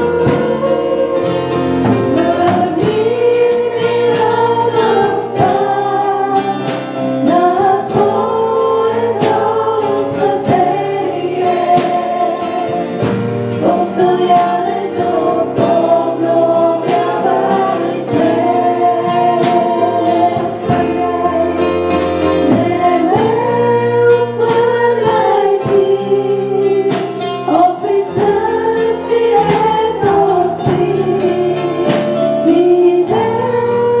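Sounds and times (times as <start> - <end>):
woman singing: 0.0 - 13.0, 13.6 - 34.0
acoustic guitar: 0.0 - 34.0
drums keeping steady beat: 0.0 - 34.0.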